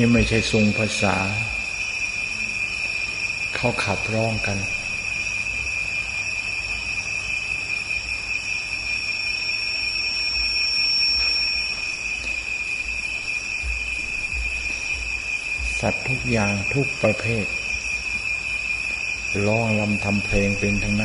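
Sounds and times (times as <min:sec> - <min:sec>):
insects chirring: 0:00.0 - 0:21.0.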